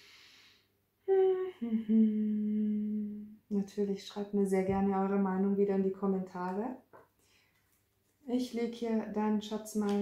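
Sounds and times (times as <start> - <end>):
woman humming: 1.0 - 3.4.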